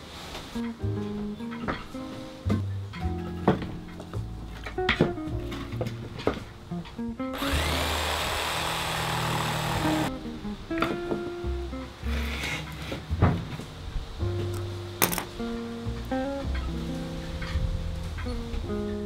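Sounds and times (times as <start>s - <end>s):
power tool motor whining: 7.4s - 10.1s.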